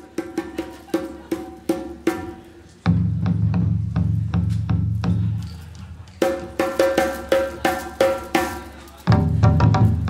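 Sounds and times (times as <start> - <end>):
hand drum strikes: 6.2 - 10.0.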